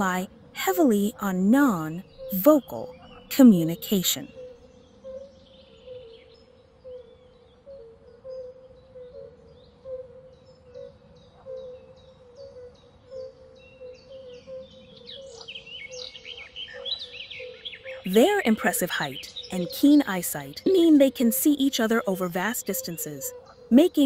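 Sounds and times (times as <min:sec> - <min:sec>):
steady faint hum: 0:00.0 - 0:04.3
birds chirping: 0:00.0 - 0:24.0.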